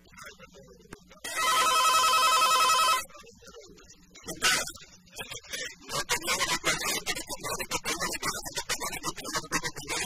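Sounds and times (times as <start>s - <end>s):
telephone ringing: 1.2s - 3.1s.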